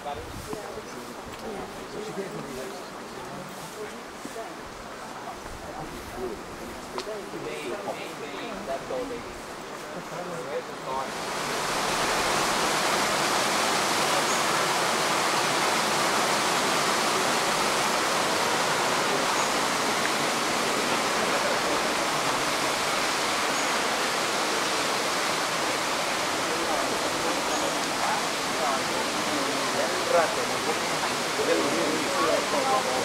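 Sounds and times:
waterfall rushing: 6.2s - 33.0s.

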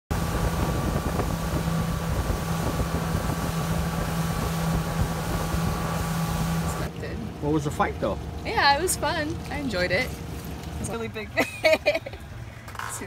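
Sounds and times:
wind rushing: 0.1s - 6.8s
outboard motor running: 0.1s - 13.0s
wake water rushing: 0.1s - 13.0s.

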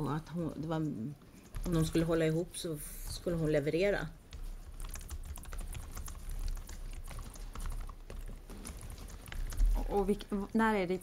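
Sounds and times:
steady low hum: 0.0s - 11.0s
computer keyboard typing: 1.2s - 11.0s.

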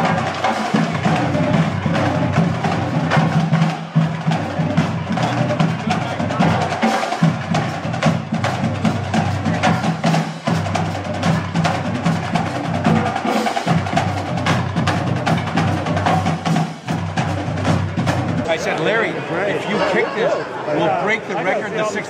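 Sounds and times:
live band music: 0.0s - 20.2s.

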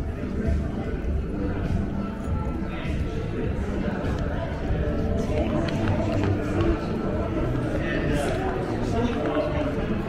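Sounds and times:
background music: 0.0s - 10.0s
indistinct voices: 0.0s - 10.0s.

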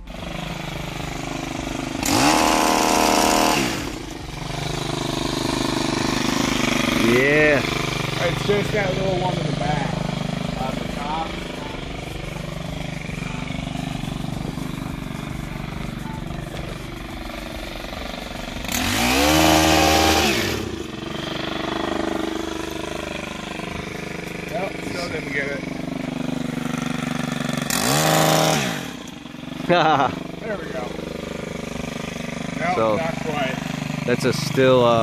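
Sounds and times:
hedge trimmer engine revving: 0.0s - 35.0s.

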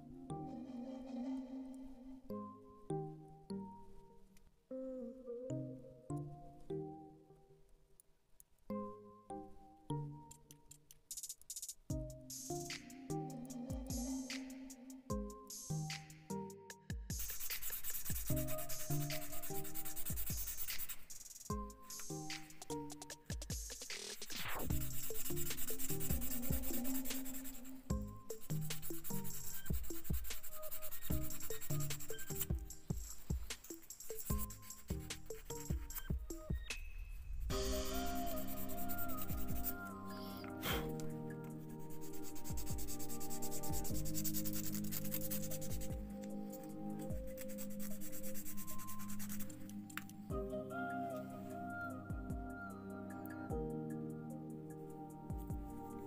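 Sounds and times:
background music with plucked notes: 0.0s - 7.6s, 8.7s - 10.9s, 11.9s - 17.2s, 18.2s - 20.5s, 21.5s - 23.8s, 24.4s - 36.8s, 37.5s - 56.0s
sandpaper rubbing on wood: 17.2s - 21.3s, 42.0s - 45.9s, 47.3s - 49.6s.

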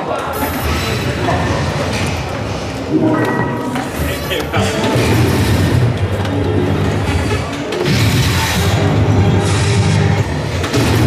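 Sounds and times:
busy hall rumble: 0.0s - 11.0s.

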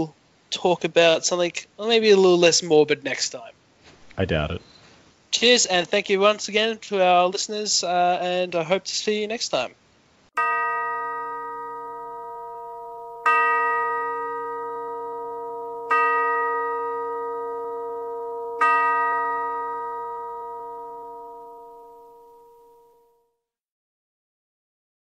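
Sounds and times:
bell-like chime ringing: 10.4s - 23.2s.

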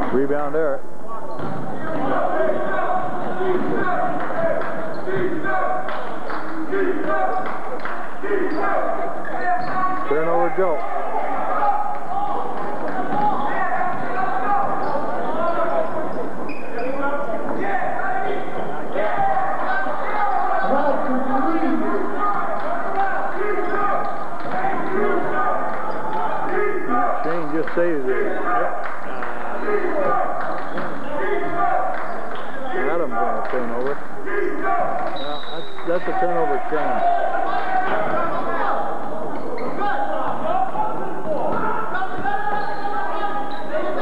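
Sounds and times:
many voices talking: 0.0s - 44.0s.

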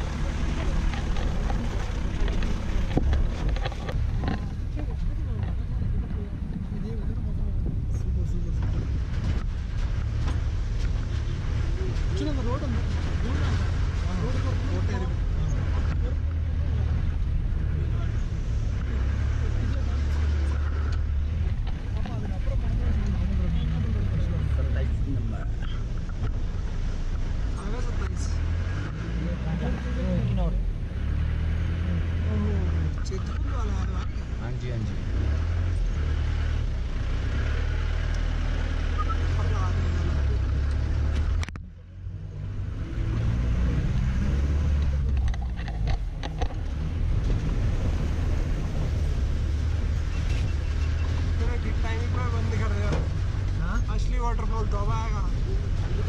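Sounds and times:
engine and road rumble: 0.0s - 56.0s
voices talking: 32.0s - 42.0s.

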